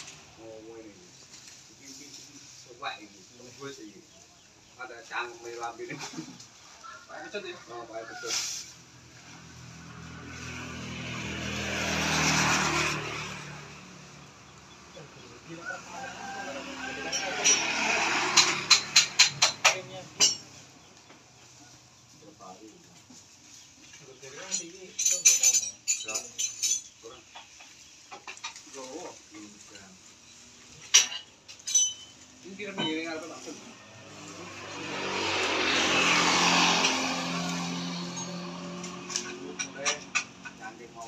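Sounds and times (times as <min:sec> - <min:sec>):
vehicle passing: 0:00.0 - 0:23.7, 0:31.4 - 0:41.0
sharp clacks and knocks: 0:17.1 - 0:21.2.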